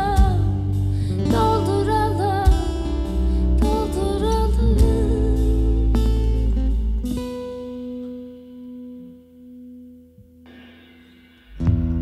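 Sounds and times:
acoustic band playing: 0.0 - 9.1, 10.5 - 12.0.

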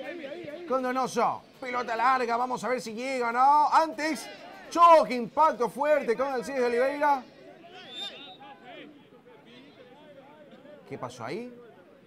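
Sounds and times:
players shouting and talking: 0.0 - 12.0.

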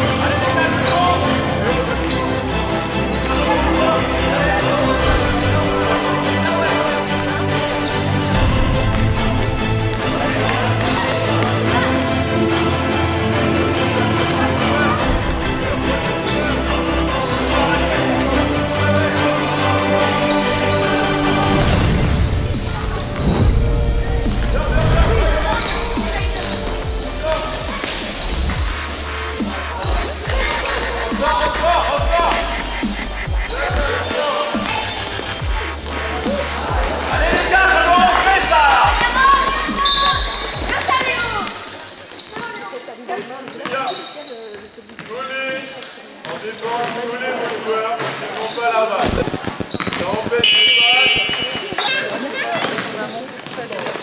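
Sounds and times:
voices calling out: 10.0 - 46.8, 48.0 - 53.7.

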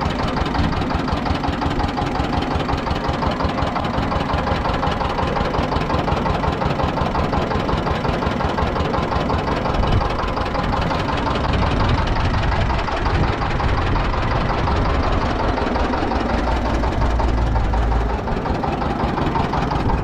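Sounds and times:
small engine knocking rapidly: 0.0 - 20.0.

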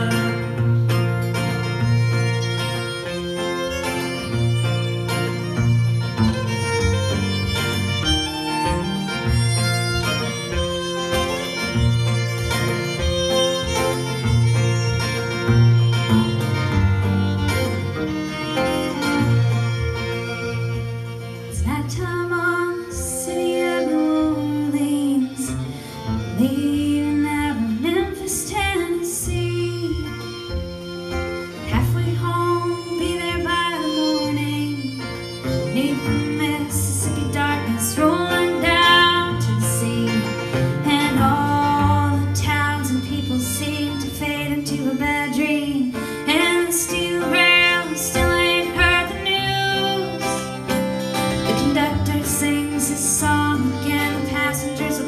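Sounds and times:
woman singing: 0.0 - 1.0, 21.4 - 30.7, 31.5 - 50.6, 51.3 - 55.0
acoustic guitar: 0.0 - 55.0
fiddle: 0.0 - 55.0.

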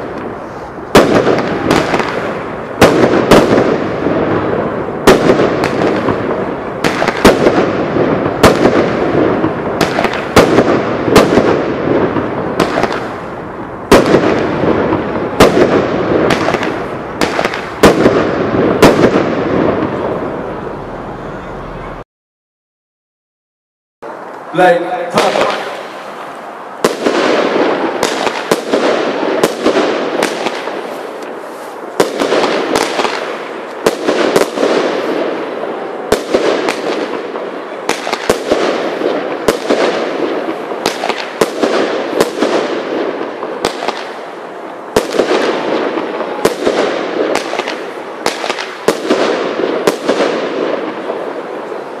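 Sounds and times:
firework salute bangs echoing: 0.0 - 22.0, 24.0 - 52.0.

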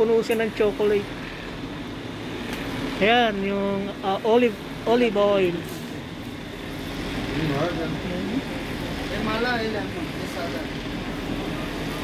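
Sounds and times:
shop and street noise hum: 0.0 - 12.0.

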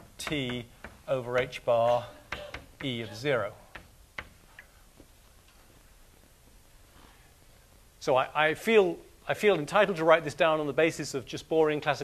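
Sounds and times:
chalk tapping on blackboard: 0.0 - 4.7.

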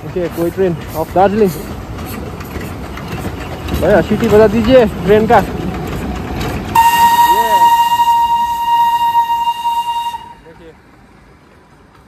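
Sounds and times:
steam locomotive whistle blast: 6.8 - 10.5.

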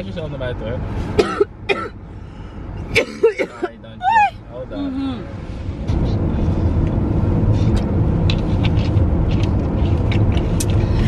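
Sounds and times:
car cabin road noise: 0.0 - 11.0.

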